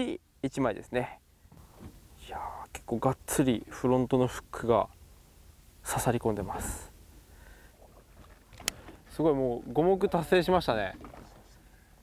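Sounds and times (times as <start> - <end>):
boat engine low rumble: 1.3 - 12.0.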